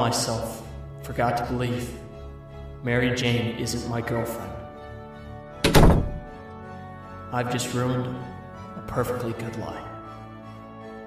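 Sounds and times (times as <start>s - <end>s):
soft background music: 0.0s - 11.0s
door shutting with heavy thud: 5.6s - 6.3s.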